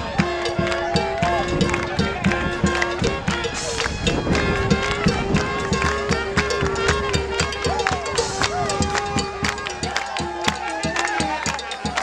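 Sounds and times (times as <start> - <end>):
jazz and blues band playing: 0.0 - 9.5
drum beat: 0.0 - 12.0
handclaps: 0.0 - 12.0.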